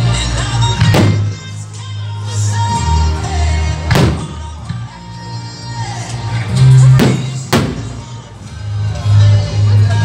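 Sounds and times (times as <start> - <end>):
loud music with bass: 0.0 - 10.0
firework bangs: 0.9 - 1.4, 7.0 - 8.0.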